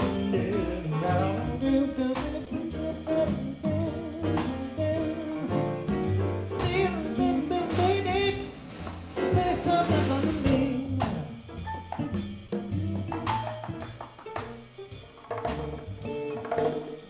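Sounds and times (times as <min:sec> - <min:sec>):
small jazz band playing: 0:00.0 - 0:17.0.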